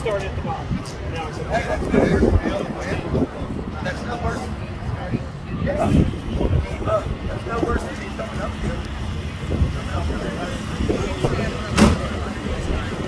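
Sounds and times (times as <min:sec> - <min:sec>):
indistinct chatter: 0:00.0 - 0:13.0
vehicle engine rumble: 0:00.0 - 0:13.0.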